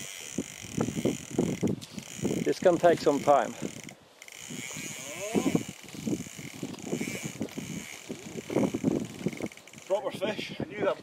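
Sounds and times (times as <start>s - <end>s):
fishing reel drag buzzing: 0.0s - 10.2s.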